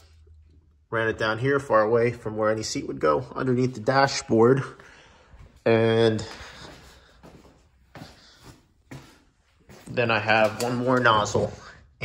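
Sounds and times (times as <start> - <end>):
soft footsteps on garage floor: 3.4 - 11.7.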